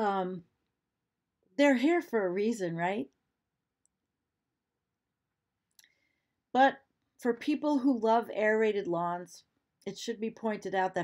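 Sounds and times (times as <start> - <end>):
woman speaking: 0.0 - 0.6, 1.6 - 3.2, 6.6 - 11.0.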